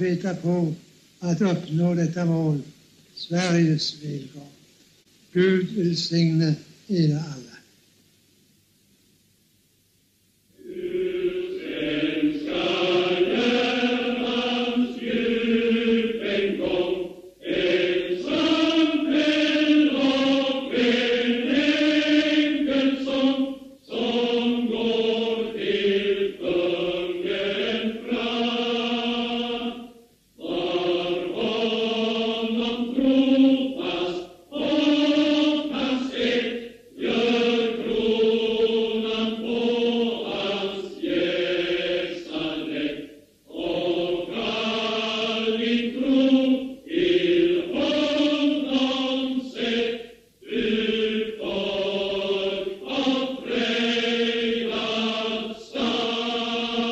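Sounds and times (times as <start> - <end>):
choir singing a slow hymn: 10.5 - 56.9.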